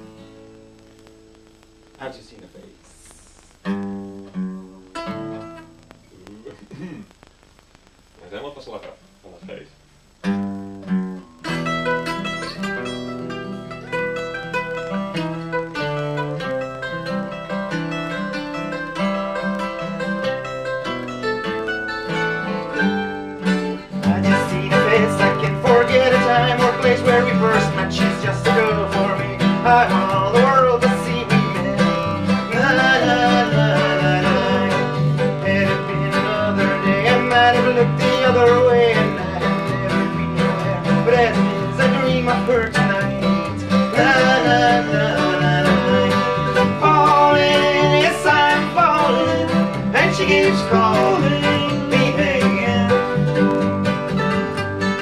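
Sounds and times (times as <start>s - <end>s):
strummed acoustic guitar: 3.6s - 7.2s, 10.2s - 55.0s
mandolin: 10.3s - 55.0s.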